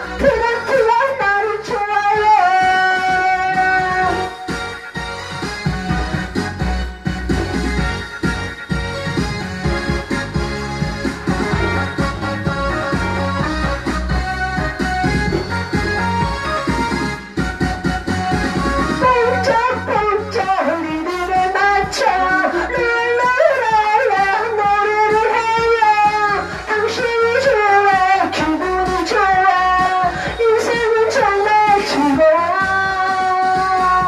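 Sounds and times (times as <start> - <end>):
karaoke backing track: 0.0 - 34.0.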